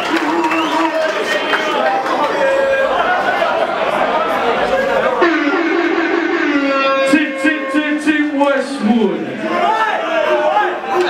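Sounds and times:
crowd room noise: 0.0 - 11.0.

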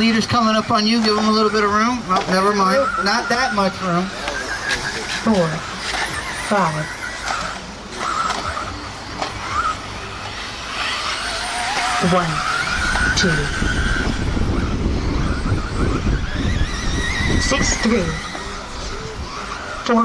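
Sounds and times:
rc car motors whining: 0.0 - 20.0.

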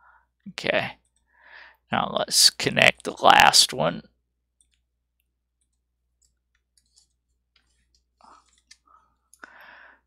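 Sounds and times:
mouse and keyboard clicks: 5.6 - 8.8.

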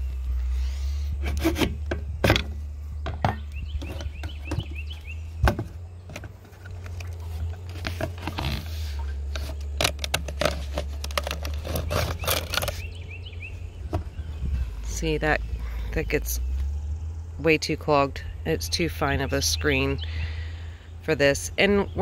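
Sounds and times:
steady low rumble: 0.0 - 9.9, 12.7 - 22.0
scraping and rustling of mesh screen: 6.1 - 12.9.

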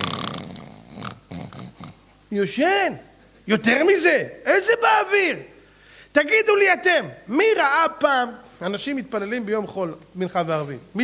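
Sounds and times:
man imitating a snore: 0.0 - 2.0.

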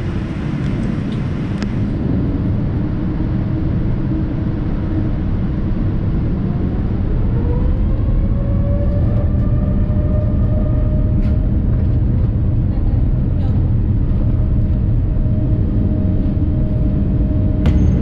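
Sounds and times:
jet engines rumbling: 0.0 - 18.0
turbofan whine: 0.0 - 18.0.

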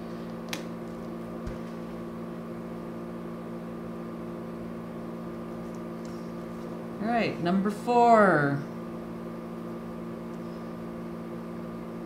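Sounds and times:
steady multi-tone hum: 0.0 - 12.0.

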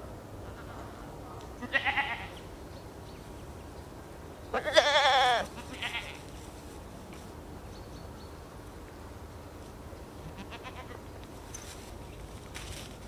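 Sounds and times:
goats bleating: 1.6 - 2.4, 4.5 - 6.3, 10.3 - 11.0.

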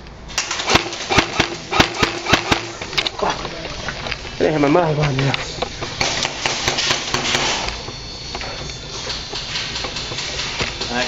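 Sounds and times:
faint hum: 0.0 - 11.0
airsoft gunfire cracks: 0.4 - 3.0.

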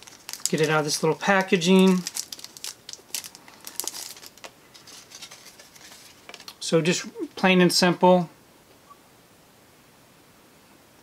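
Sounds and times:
packaging crinkling: 0.0 - 6.6.

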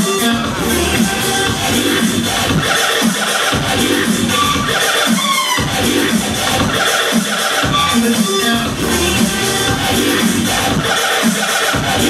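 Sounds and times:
loud electronic dance music: 0.0 - 12.0.

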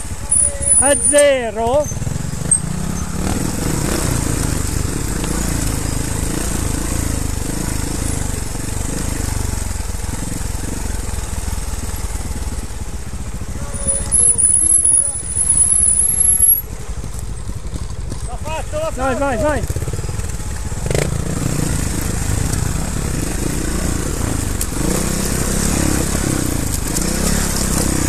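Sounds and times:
motorcycle engine at low revs: 0.0 - 28.0
high wavering squeal: 13.8 - 16.6.

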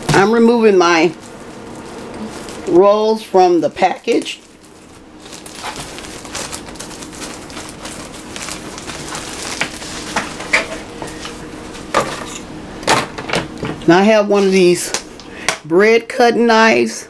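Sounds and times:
plastic bag crinkling: 0.0 - 12.2.

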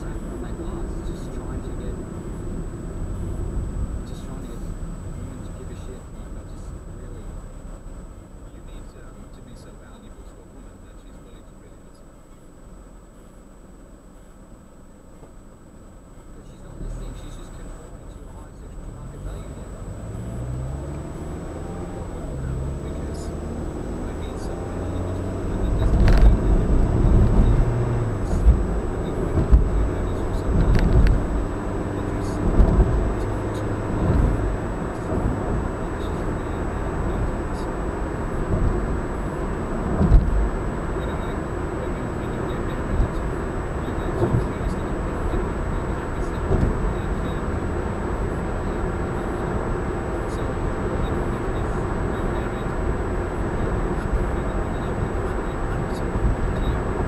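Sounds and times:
car cabin road rumble: 0.0 - 57.0
low thumps: 19.4 - 48.7.

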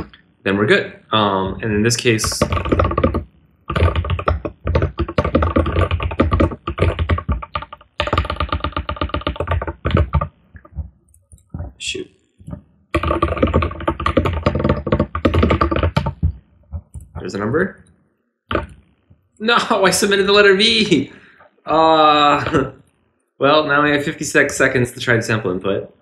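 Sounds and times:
fast typing on keyboard: 1.4 - 11.7, 12.4 - 17.5, 18.5 - 18.8, 22.2 - 22.8, 24.0 - 25.0.

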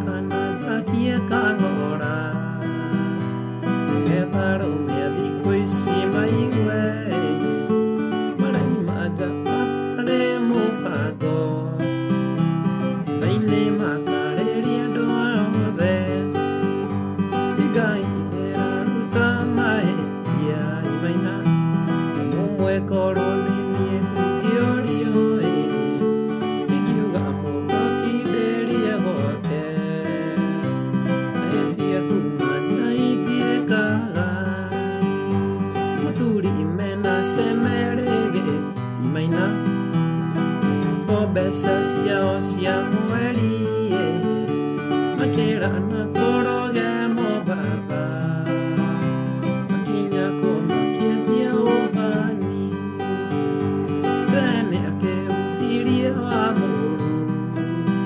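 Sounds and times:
acoustic guitar picking and strumming: 0.0 - 58.0.

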